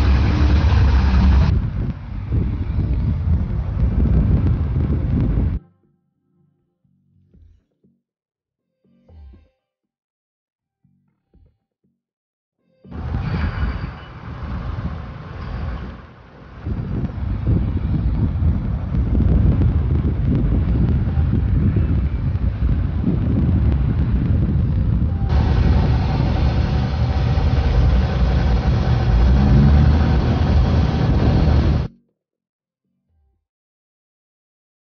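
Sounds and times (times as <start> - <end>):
low rumble of harbour noise: 0.0 - 5.6, 12.9 - 31.9.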